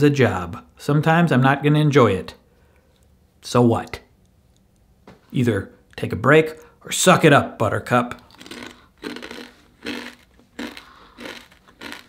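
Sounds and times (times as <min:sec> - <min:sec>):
person chewing crunchy snack: 0:08.2 - 0:12.0.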